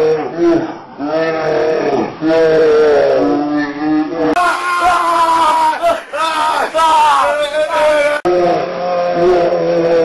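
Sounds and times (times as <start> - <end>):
wavering cat-like roaring cries: 0.0 - 10.0.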